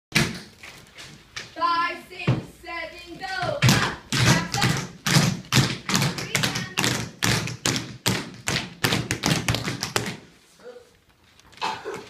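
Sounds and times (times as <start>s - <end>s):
tap shoes on wooden floor: 2.2s - 2.6s, 3.3s - 10.3s.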